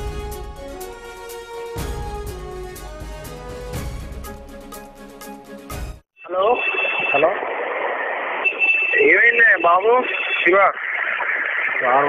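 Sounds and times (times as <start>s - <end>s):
person speaking on phone: 6.2s - 7.7s, 8.6s - 10.8s
phone line hiss: 6.2s - 10.7s.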